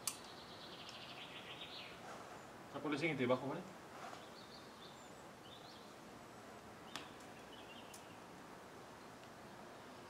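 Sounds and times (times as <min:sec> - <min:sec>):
sharp click: 0:00.0 - 0:01.0
small birds chirping: 0:00.0 - 0:10.0.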